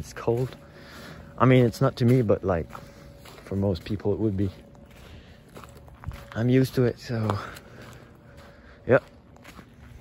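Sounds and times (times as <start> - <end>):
footsteps on wet gravel: 0.0 - 10.0.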